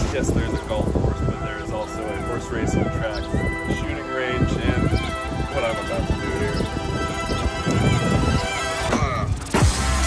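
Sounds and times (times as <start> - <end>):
heavy deep bass: 0.0 - 10.0
music with steady beat: 0.0 - 10.0.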